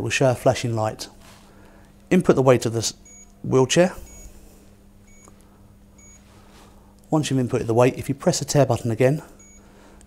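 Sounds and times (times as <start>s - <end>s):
keypad beeps: 3.0s - 3.3s, 4.1s - 4.3s, 5.1s - 5.3s, 6.0s - 6.2s, 9.4s - 9.6s.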